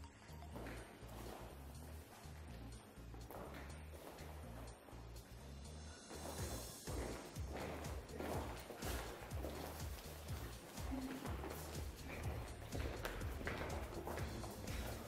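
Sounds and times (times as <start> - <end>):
high heels clicking on tiles: 0.0 - 4.9, 6.1 - 15.0
music with bass line: 0.0 - 15.0.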